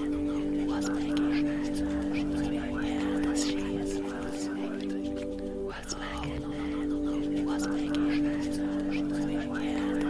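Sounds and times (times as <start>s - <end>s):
ambient meditation music drone: 0.0s - 10.0s
whispered voices: 0.0s - 10.0s.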